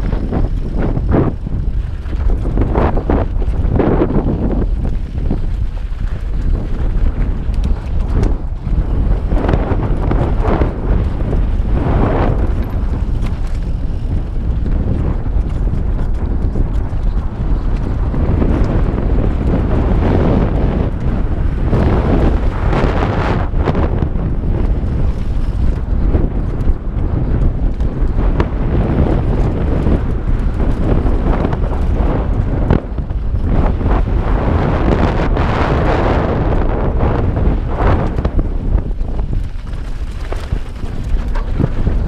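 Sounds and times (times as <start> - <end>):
bike rattling and knocking: 0.0 - 42.0
tyres rumbling on dirt: 0.0 - 42.0
wind buffeting microphone: 0.0 - 42.0.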